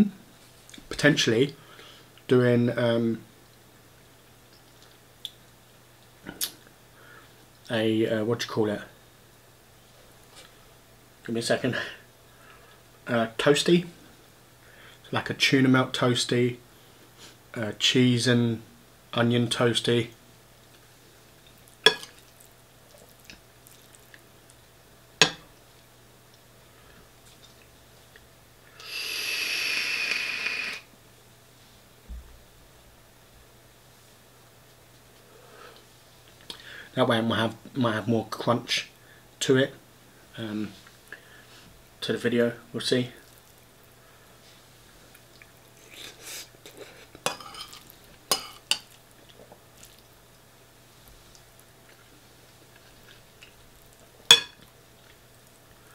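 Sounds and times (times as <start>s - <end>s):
e-cigarette hissing: 28.8s - 30.9s
fork clinking against ceramic bowl: 54.3s - 54.6s.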